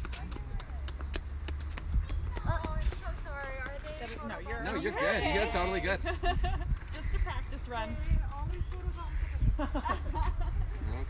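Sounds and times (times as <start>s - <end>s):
child running footsteps on concrete: 0.0s - 4.9s, 6.7s - 9.3s.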